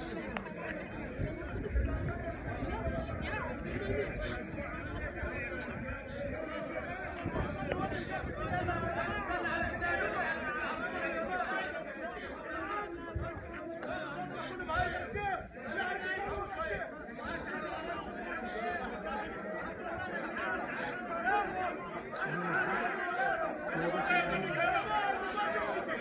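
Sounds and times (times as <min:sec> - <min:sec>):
crowd of men talking: 0:00.0 - 0:26.0.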